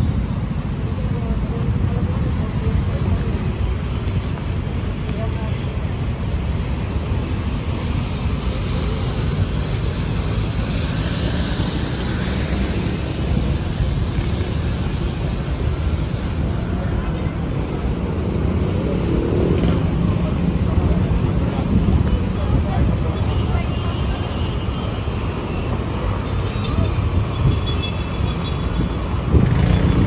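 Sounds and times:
cars passing: 0.0s - 30.0s
indistinct crowd chatter: 0.0s - 30.0s
low traffic rumble: 0.0s - 30.0s
vehicle hiss: 0.0s - 30.0s.

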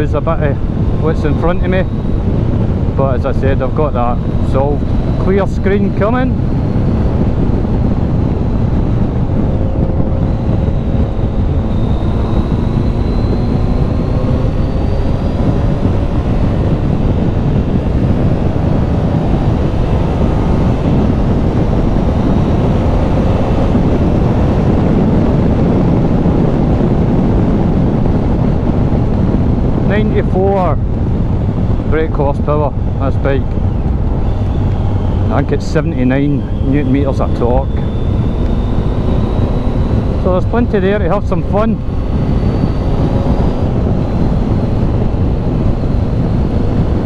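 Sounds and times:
motorcycle engine: 0.0s - 47.0s
wind buffeting microphone: 0.0s - 47.0s.

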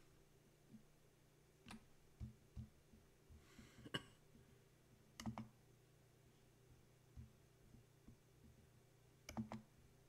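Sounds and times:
soft breath: 3.3s - 4.8s
computer mouse click: 5.2s - 5.5s, 9.2s - 9.7s.

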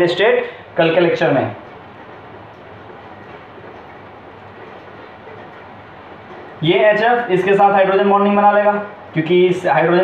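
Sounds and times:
room noise rumble: 0.0s - 10.0s.

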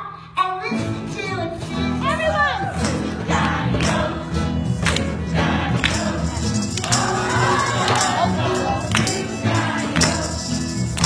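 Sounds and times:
children's choir singing: 2.4s - 11.0s
sharp percussion beat: 2.8s - 11.0s.

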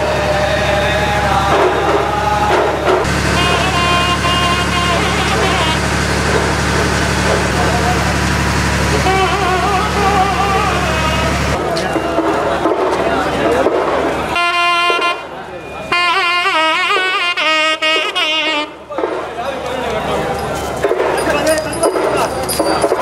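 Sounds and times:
men chanting together: 0.0s - 3.1s
low engine-like hum: 0.0s - 16.6s.

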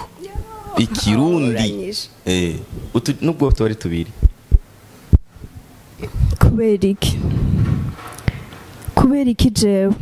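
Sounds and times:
dull low thumps: 3.5s - 8.0s.

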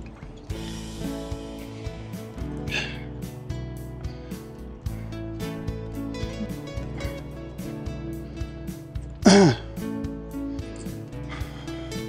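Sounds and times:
acoustic guitar music: 0.0s - 12.0s
person clearing throat: 9.2s - 9.8s.

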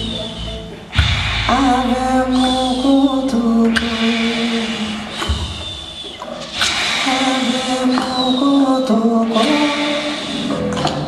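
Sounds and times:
live band held note: 0.0s - 11.0s
low drum hit: 0.9s - 2.4s.

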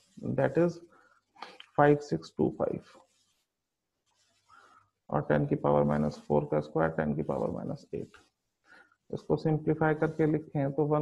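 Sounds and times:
stylus scratching on pen tablet: 2.8s - 4.5s.

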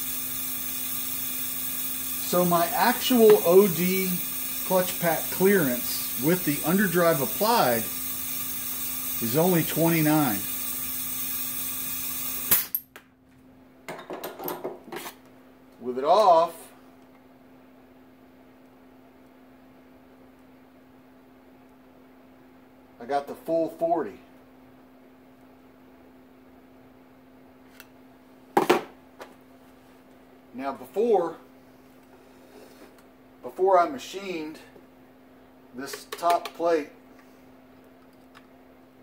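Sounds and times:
compressed air hissing: 0.0s - 12.7s
steady hum: 0.0s - 12.8s
sharp air release pop: 12.2s - 12.8s.

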